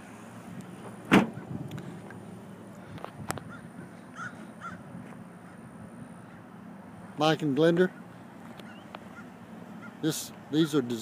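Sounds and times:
heavy thump: 0:01.1 - 0:01.4.

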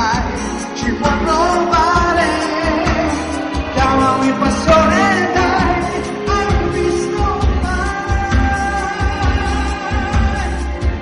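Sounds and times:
pop band with pulsing bass: 0:00.0 - 0:11.0
person singing long notes: 0:00.9 - 0:11.0.

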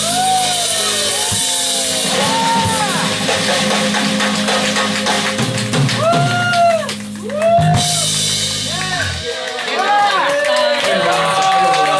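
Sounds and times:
drum kit and cymbals: 0:00.0 - 0:10.0
electric guitars: 0:00.0 - 0:10.0.

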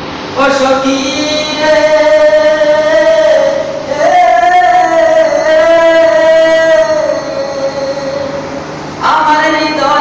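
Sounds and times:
man singing a long note: 0:00.4 - 0:10.0.

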